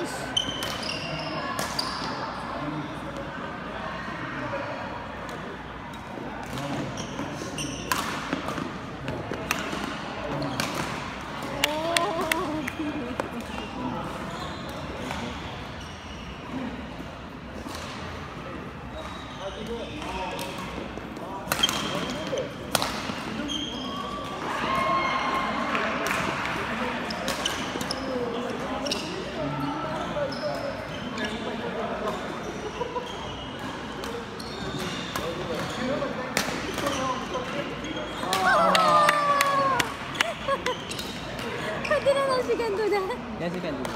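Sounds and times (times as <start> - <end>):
background chatter: 0.0 - 43.9.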